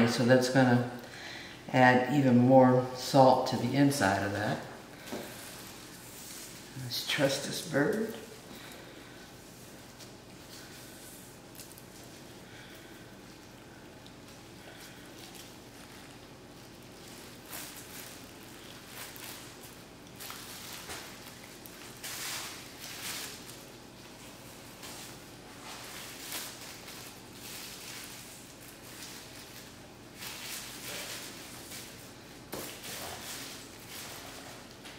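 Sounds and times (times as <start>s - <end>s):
gloved hands rustling: 5.0s - 34.9s
soft squishing of raw chicken: 9.5s - 24.2s.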